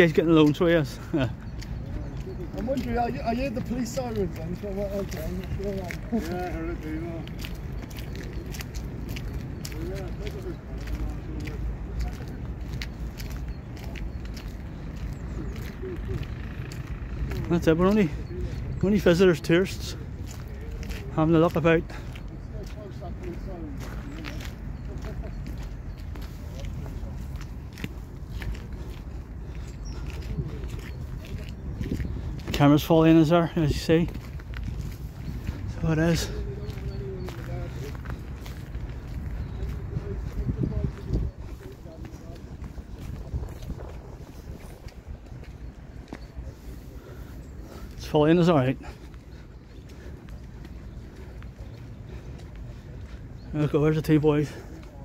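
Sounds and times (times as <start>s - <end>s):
footsteps on tarmac: 0.0s - 55.0s
quiet background voices: 1.0s - 33.0s, 34.9s - 55.0s
wind rumbling on microphone: 22.4s - 48.1s.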